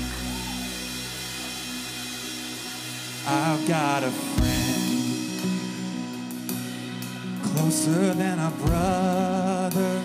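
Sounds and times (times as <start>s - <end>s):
person singing: 3.2s - 5.7s, 7.4s - 10.0s.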